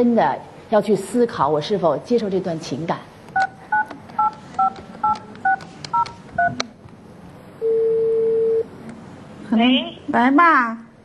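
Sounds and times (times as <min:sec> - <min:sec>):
touch-tone keypad beeps: 0:03.4 - 0:06.6.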